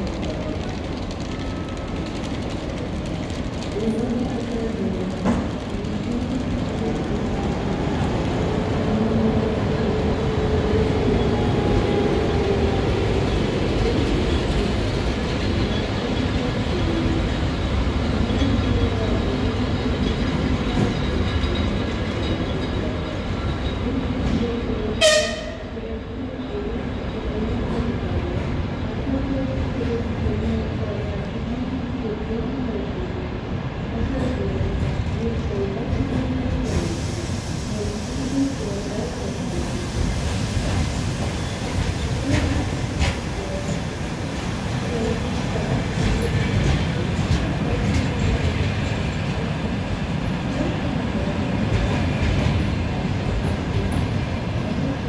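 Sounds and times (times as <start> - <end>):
train wheels rumbling on rails: 0.0 - 25.7, 32.1 - 55.0.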